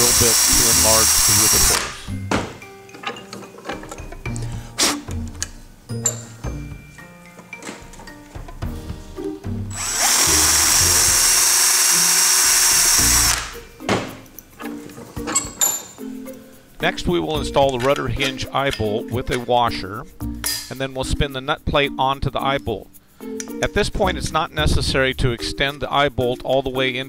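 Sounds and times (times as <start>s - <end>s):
power drill running: 0.0s - 2.1s, 9.7s - 13.6s
background music: 0.0s - 27.0s.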